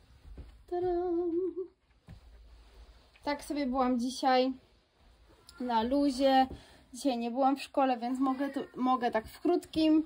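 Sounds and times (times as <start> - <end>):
woman humming: 0.7 - 1.8.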